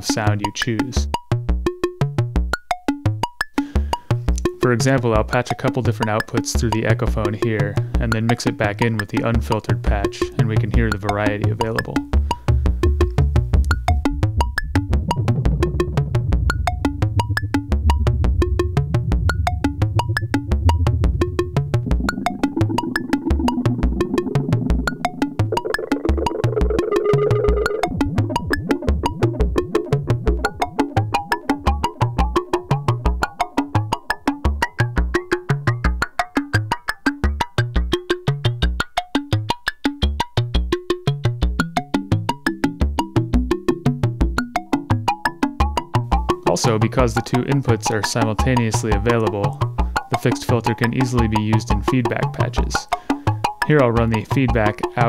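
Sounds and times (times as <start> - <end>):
short bass pulses: 12.0 - 33.0
low synth drone: 12.1 - 33.2
clicky synthesizer sequence: 12.9 - 32.7.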